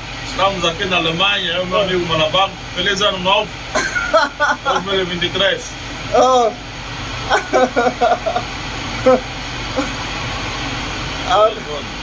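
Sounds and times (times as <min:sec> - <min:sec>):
machinery hum and hiss: 0:00.0 - 0:12.0
man's voice or laughter: 0:03.7 - 0:05.1, 0:07.3 - 0:10.0.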